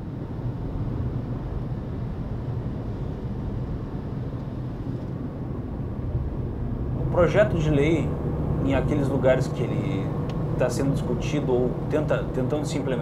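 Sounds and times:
vehicle road noise rumble: 0.0 - 13.0.

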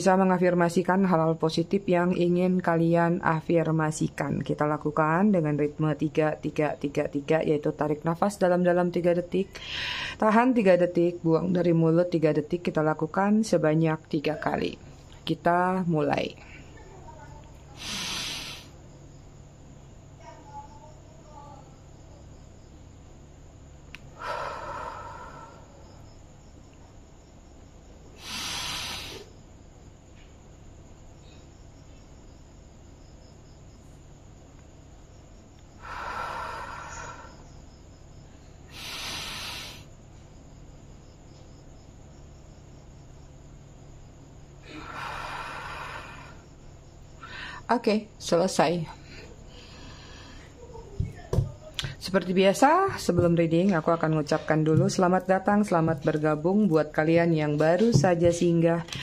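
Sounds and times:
woman breathing deeply: 17.8 - 18.8, 24.1 - 26.0, 28.1 - 29.3, 35.8 - 37.5, 38.4 - 39.9, 44.6 - 46.6, 47.2 - 47.7, 49.0 - 50.6.

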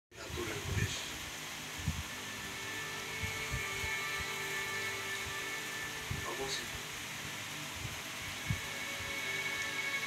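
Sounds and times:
electrical hum: 0.2 - 10.0
faint high whine: 0.2 - 10.0.

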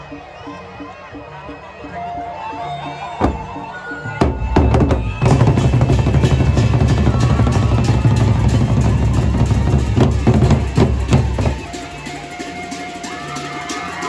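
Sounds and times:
group playing barrel drums: 4.2 - 14.0.

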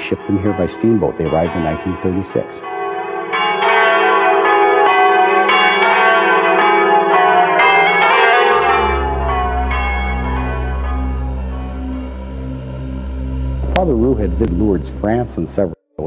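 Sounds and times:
church bells ringing: 0.0 - 15.6
low steady hum: 10.4 - 15.8.

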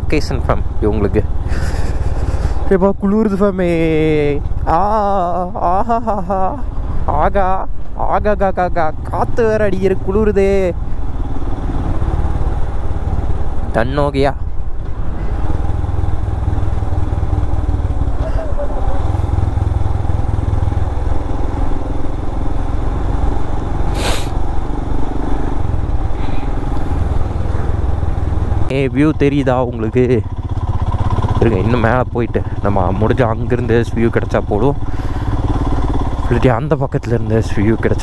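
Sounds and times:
motorcycle engine and wind rumble: 0.0 - 38.0.

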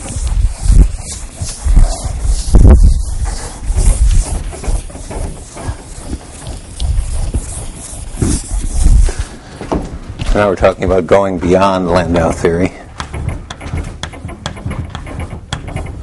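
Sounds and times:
eraser wiping chalkboard: 0.0 - 9.5, 10.3 - 16.0
boards rumbling and knocking: 0.0 - 16.0.

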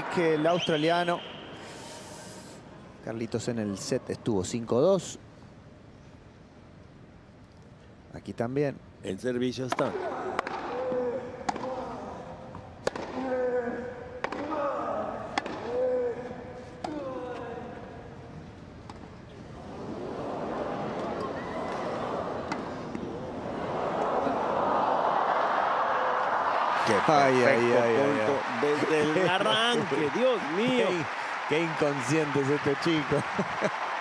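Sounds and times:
crowd cheering and applause: 0.0 - 0.9, 19.8 - 34.0
tennis ball hits: 12.8 - 13.2, 14.2 - 14.5.

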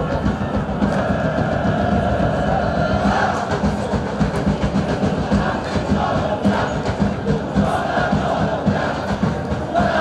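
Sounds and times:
crowd chanting: 0.0 - 10.0.

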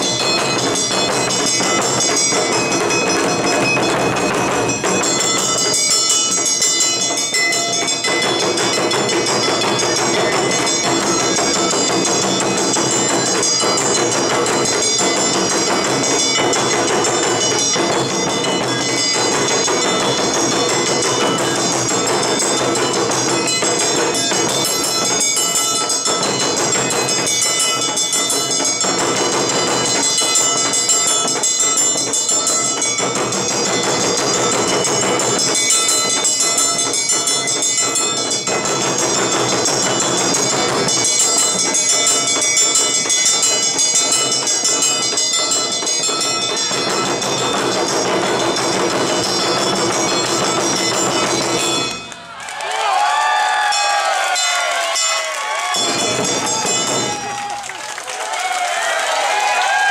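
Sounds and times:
hand gongs clanging: 0.0 - 52.4, 53.6 - 57.7
taiko drums beating: 0.0 - 59.9.

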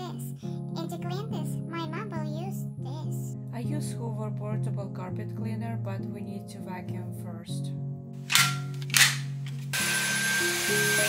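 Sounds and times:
background music: 0.0 - 11.0
vacuum cleaner running over carpet: 9.8 - 11.0.

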